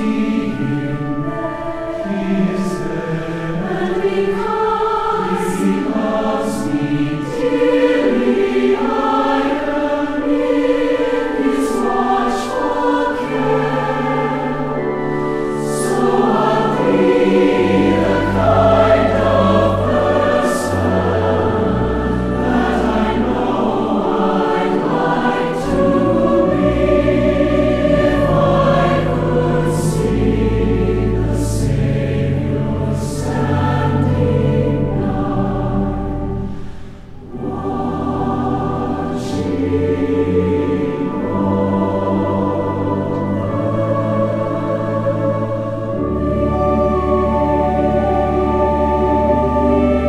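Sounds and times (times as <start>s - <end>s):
mixed choir singing a hymn: 0.0s - 50.0s.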